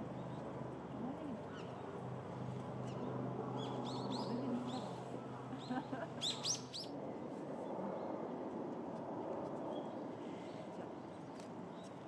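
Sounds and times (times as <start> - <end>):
small birds chirping: 0.0 - 5.0, 5.6 - 6.9
low background noise: 0.0 - 12.0.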